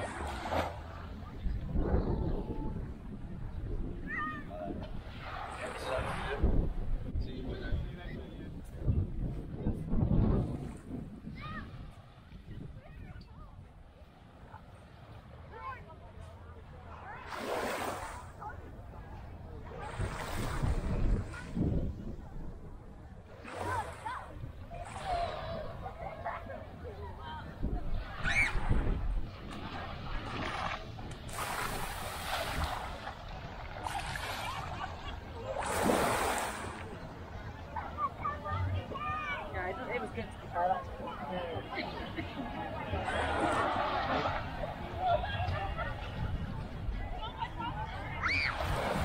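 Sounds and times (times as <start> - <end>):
small waves lapping: 0.0 - 2.0, 4.7 - 6.6, 10.4 - 22.2, 23.1 - 26.8, 27.6 - 46.7, 47.9 - 49.0
wind buffeting microphone: 0.0 - 13.8, 18.4 - 49.0
people chattering: 0.0 - 49.0.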